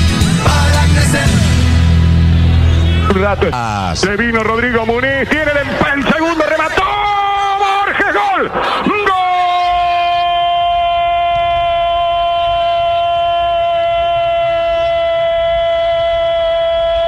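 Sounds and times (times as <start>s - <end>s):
commentator's drawn-out goal cry: 5.4s - 15.3s.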